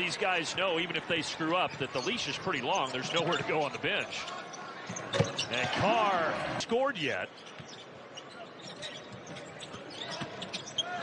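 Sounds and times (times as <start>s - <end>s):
arena crowd noise: 0.0s - 11.0s
shoe squeaks: 2.8s - 5.6s, 7.3s - 11.0s.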